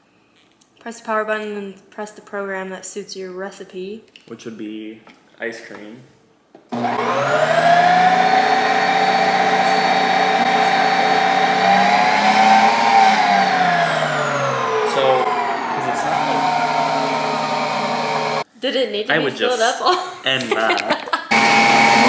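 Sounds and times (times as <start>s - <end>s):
ice cream maker motor whirring: 6.7s - 18.4s, 21.3s - 22.0s.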